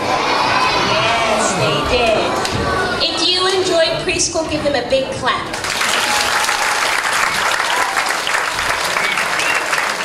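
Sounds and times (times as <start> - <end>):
children shouting in a hall: 0.0 - 1.6.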